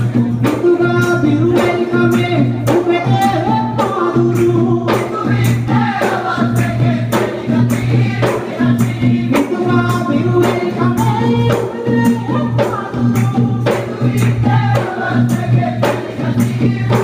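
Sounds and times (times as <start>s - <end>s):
barrel drums beating: 0.0s - 17.0s
group singing in chorus: 0.0s - 17.0s.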